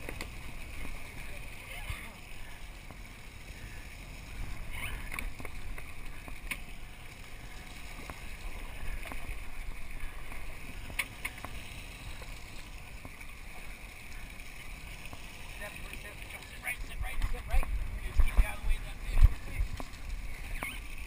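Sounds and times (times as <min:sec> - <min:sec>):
water churning along boat hull: 0:00.0 - 0:21.0.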